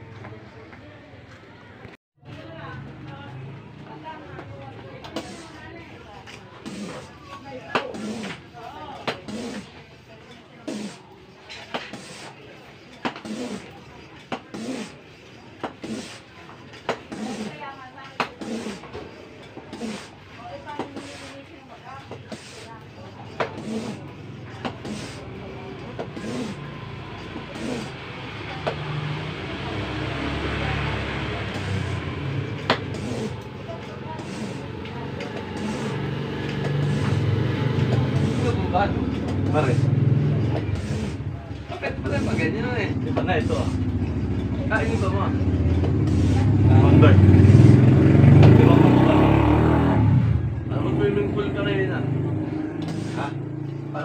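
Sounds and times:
hand pump hissing strokes: 5.1 - 5.6, 6.6 - 11.1, 11.7 - 46.8, 52.8 - 53.4.

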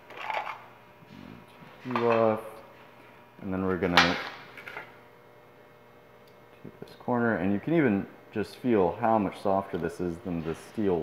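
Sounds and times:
person speaking: 6.6 - 11.0.

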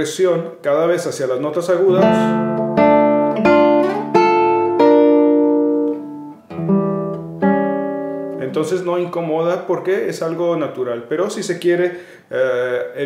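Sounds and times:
classical guitar slow arpeggio: 1.9 - 9.2.

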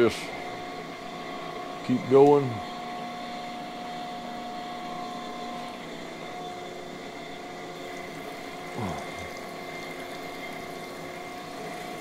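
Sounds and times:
grinding machine humming and whining: 0.0 - 12.0.

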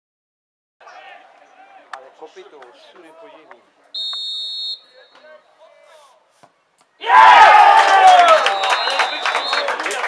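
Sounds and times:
referee's whistle blast: 4.0 - 5.5, 8.3 - 9.7.

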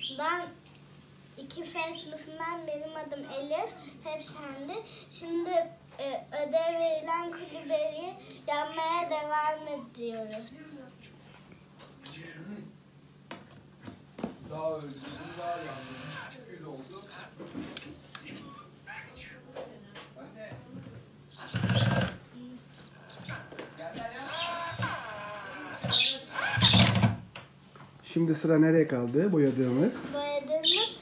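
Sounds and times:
cordless drill driving screws: 14.9 - 17.3, 21.4 - 22.2, 22.8 - 27.2.

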